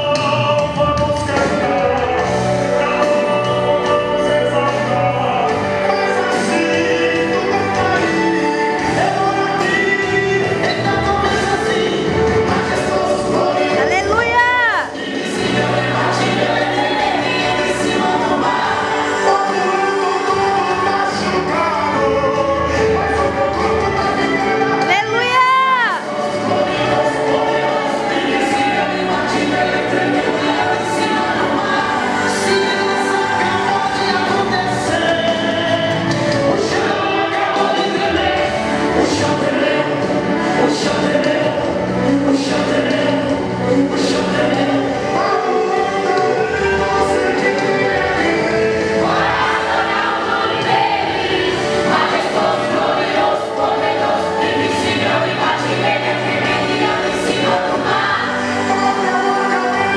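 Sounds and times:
choir singing sustained notes: 0.0 - 24.9, 26.0 - 59.9.

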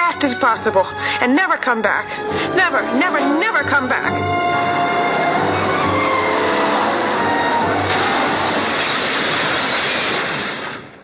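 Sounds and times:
film music: 0.0 - 9.7
car engine and road noise: 4.4 - 8.3.

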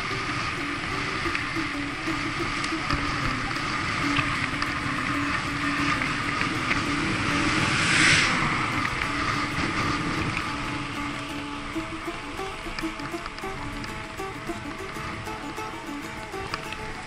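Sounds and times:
bicycle tyre noise on asphalt: 0.0 - 17.0
car passing: 0.0 - 17.0
wind rushing over microphone: 0.0 - 17.0.

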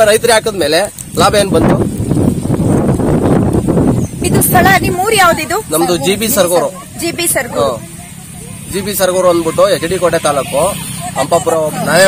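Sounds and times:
wind buffeting microphone: 0.0 - 10.1.

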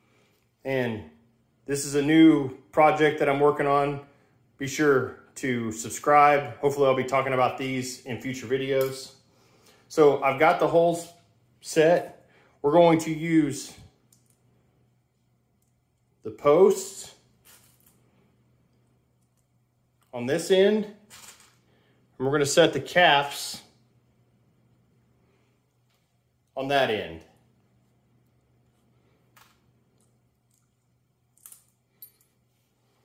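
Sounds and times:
low steady hum: 0.0 - 33.0
faint metal clinks: 31.4 - 32.4.

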